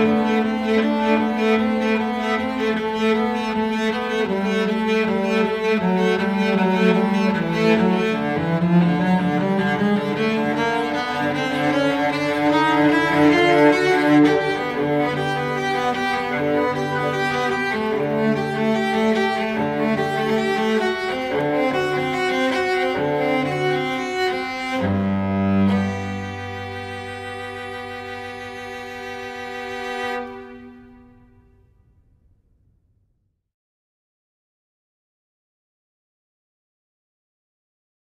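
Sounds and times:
slow bowed string music: 0.0s - 31.6s
cello low sustained notes: 0.0s - 31.7s.

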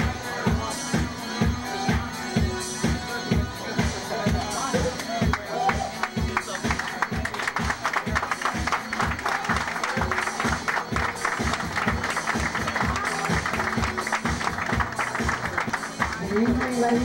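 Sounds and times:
dance music with kick drum: 0.0s - 17.0s.

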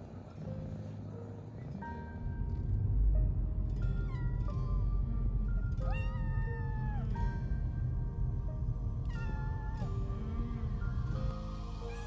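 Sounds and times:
cat meowing: 5.8s - 7.2s, 9.1s - 9.9s.

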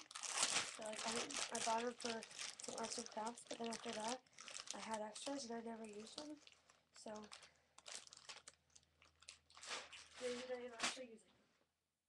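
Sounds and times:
pipe cleaners crinkling and clicking: 0.0s - 11.1s.

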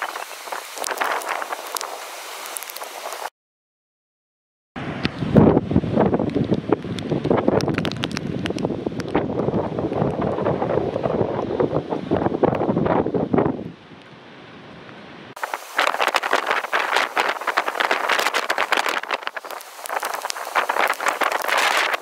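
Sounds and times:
storm wind gusting on microphone: 0.0s - 3.3s, 4.8s - 22.0s.

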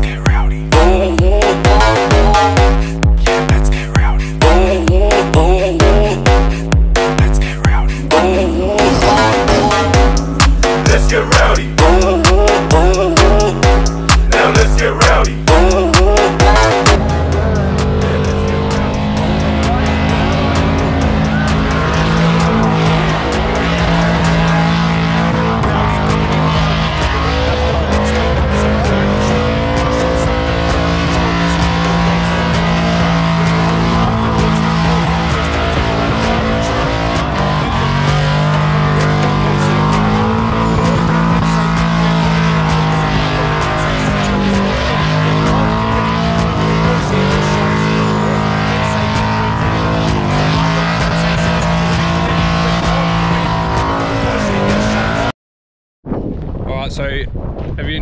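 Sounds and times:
car engine revving hard: 0.0s - 55.3s
music playing: 0.0s - 55.3s.

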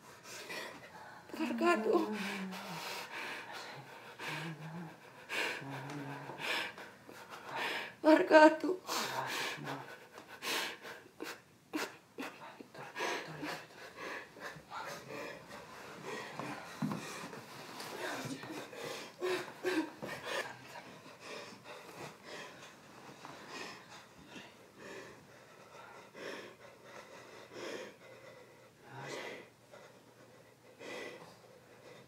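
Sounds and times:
woman sobbing: 0.4s - 17.2s, 18.0s - 22.7s.

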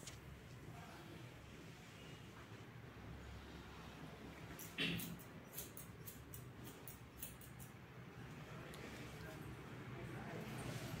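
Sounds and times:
scissors snipping hair: 4.6s - 7.8s.

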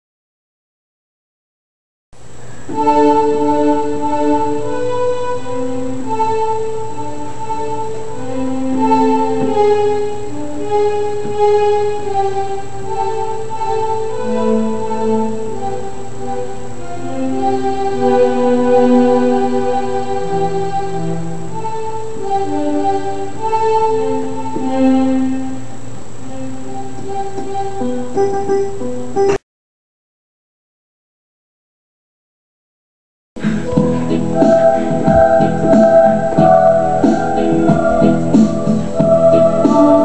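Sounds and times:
electronic keyboard slow melody: 2.7s - 28.8s, 33.4s - 40.0s.

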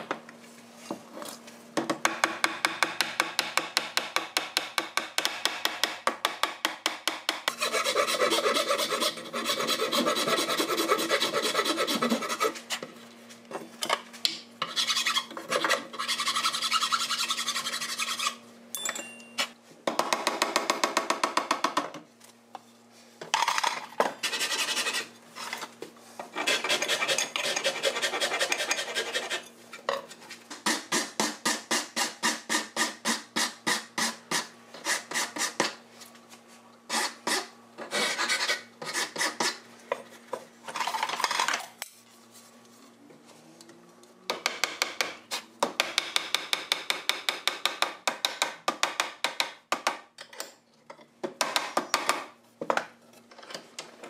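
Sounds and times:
hand file scraping wood: 7.5s - 12.9s, 14.6s - 18.4s, 24.2s - 25.6s, 26.3s - 29.4s, 36.9s - 39.6s.

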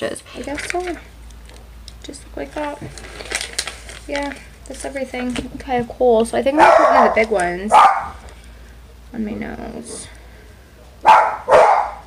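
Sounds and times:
dog barking: 6.6s - 8.2s, 11.0s - 12.0s.

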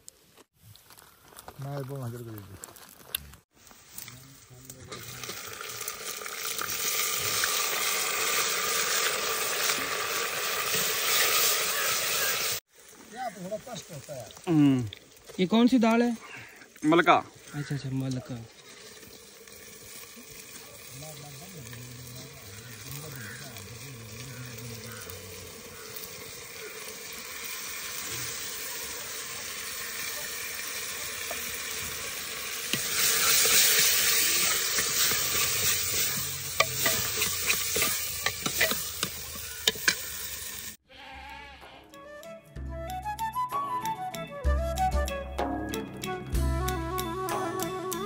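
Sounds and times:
lentils sizzling in a pot: 0.0s - 40.8s
flute music: 41.9s - 48.0s.

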